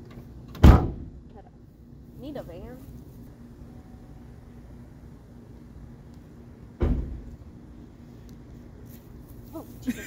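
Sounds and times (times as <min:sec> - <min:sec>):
van door slamming: 0:00.5 - 0:01.2, 0:06.8 - 0:07.3.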